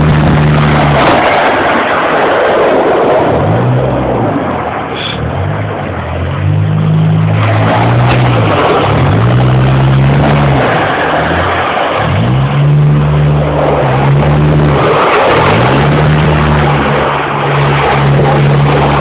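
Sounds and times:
car engine revving: 0.0s - 19.0s
constant rushing noise: 0.0s - 19.0s.

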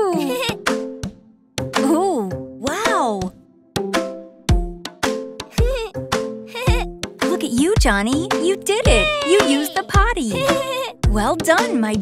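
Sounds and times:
cartoon toddler giggling: 0.0s - 0.6s, 8.9s - 10.9s
children's song music with drum beat: 0.4s - 12.0s.

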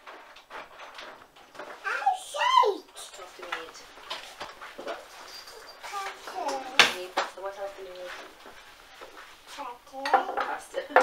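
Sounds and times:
child making vocal sounds: 1.8s - 3.0s, 5.8s - 6.9s.

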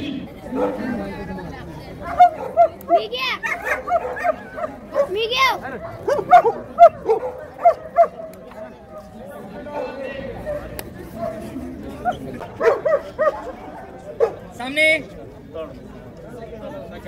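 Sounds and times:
dog barking rapidly: 2.1s - 8.2s.

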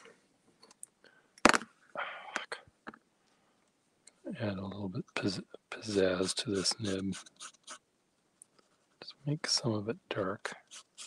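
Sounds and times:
pen nib scratching on paper: 5.8s - 7.8s, 10.7s - 11.0s.

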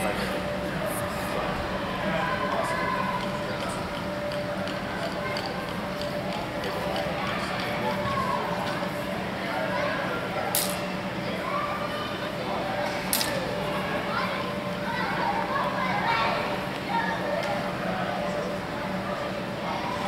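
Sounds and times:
murmur of voices: 0.0s - 20.0s.

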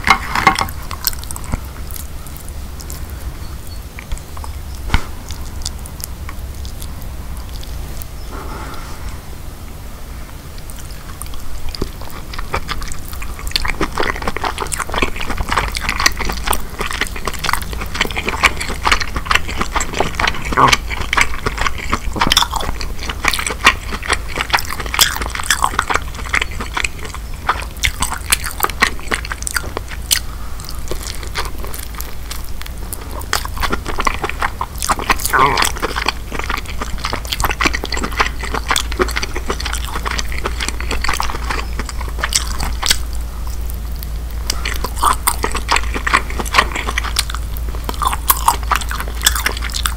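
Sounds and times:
chewing mouth sounds: 0.0s - 8.9s, 10.5s - 49.9s
low steady hum: 0.0s - 49.9s.

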